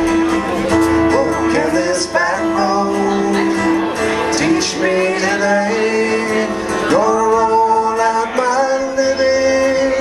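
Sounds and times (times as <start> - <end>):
acoustic guitar country song: 0.0 - 10.0
man singing: 0.8 - 10.0.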